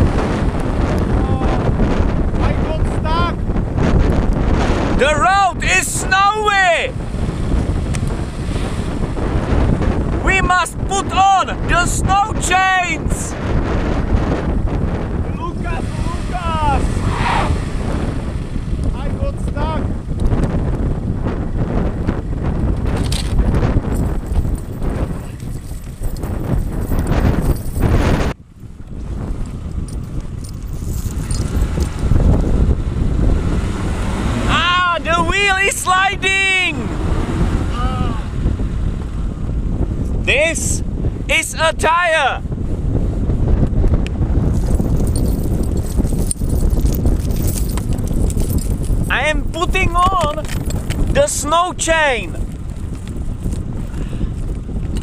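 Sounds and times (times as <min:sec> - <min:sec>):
wind buffeting microphone: 0:00.0 - 0:55.0
metal snow chains rattling: 0:23.9 - 0:28.1, 0:29.9 - 0:32.0, 0:44.5 - 0:49.7.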